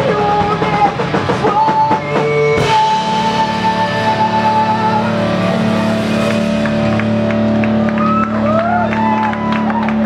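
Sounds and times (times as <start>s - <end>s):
electric guitar droning chord: 2.6s - 10.0s.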